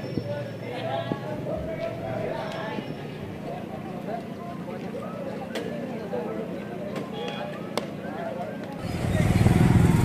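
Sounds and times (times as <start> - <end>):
engine low rumble: 8.8 - 10.0.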